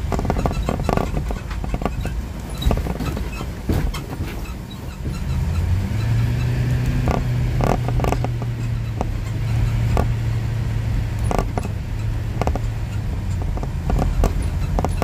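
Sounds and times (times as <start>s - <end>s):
cabin clicks and rattles: 0.0s - 5.6s, 11.2s - 15.0s
engine and road rumble: 0.0s - 15.0s
low engine drone: 0.0s - 15.0s.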